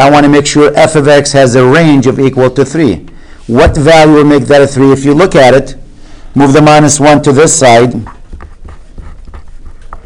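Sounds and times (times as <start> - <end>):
pen writing on paper: 8.0 - 10.0.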